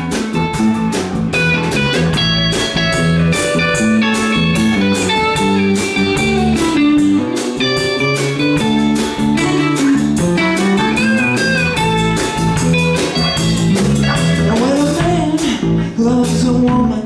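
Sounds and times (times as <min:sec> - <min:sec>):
electric guitar lead: 0:00.0 - 0:16.6
blues rock band playing: 0:00.0 - 0:17.0.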